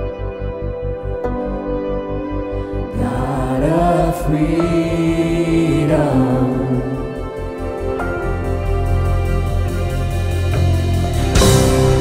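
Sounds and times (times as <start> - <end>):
person singing: 2.7 - 8.4
worship band playing: 2.9 - 12.0
pulsing low beat: 3.0 - 12.0.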